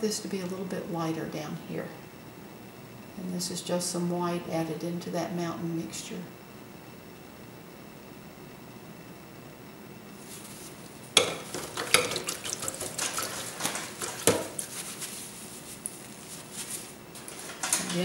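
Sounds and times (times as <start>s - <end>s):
brush swishing in water: 10.2s - 17.5s.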